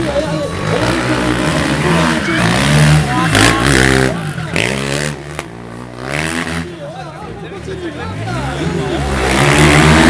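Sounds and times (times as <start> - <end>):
quad engine passing by: 0.0 - 6.9, 7.6 - 10.0.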